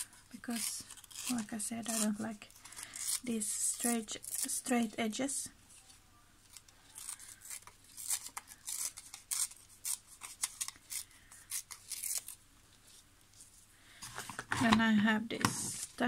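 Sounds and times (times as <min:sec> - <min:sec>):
paper tearing: 0:00.0 - 0:04.8, 0:06.5 - 0:12.4.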